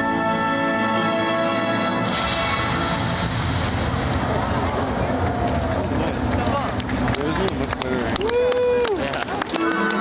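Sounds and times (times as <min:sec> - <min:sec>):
fireworks crackling and popping: 0:02.2 - 0:08.4
crowd talking and exclaiming: 0:03.5 - 0:10.0.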